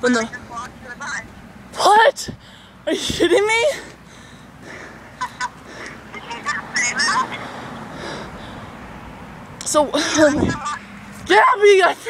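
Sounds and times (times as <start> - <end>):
young woman laughing: 5.2 - 5.6.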